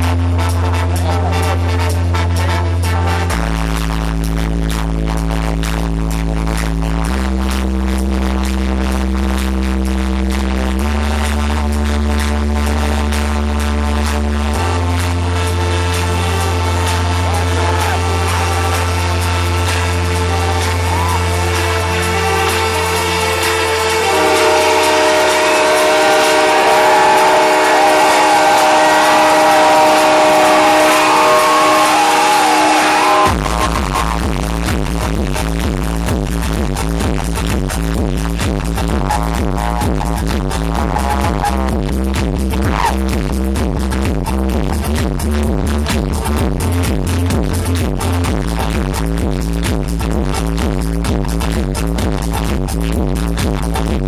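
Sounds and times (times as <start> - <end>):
electronic dance music: 0.0 - 54.0.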